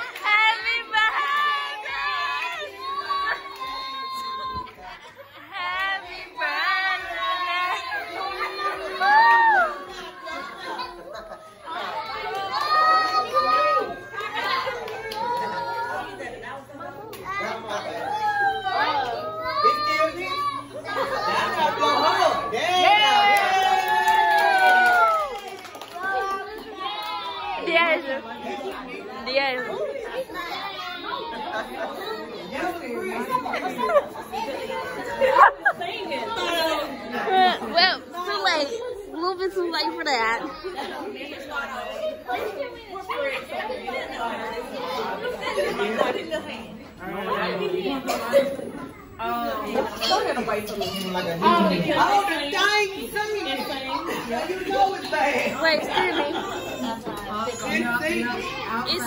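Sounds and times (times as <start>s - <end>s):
people chattering: 0.0s - 59.0s
people talking and calling out: 0.0s - 59.0s.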